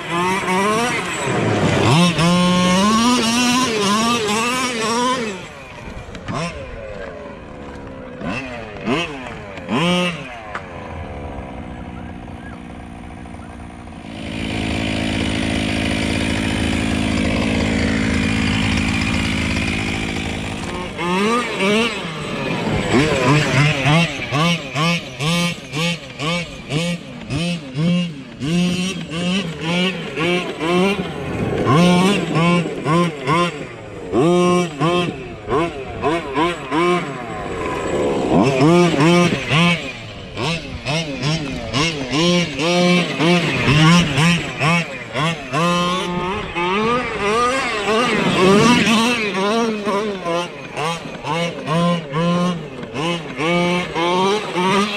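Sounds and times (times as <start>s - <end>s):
toy truck engine revving: 0.0s - 54.9s.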